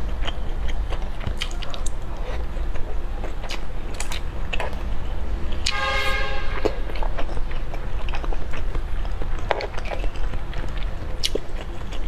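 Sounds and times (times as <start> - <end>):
close chewing and mouth sounds: 0.0 - 12.0.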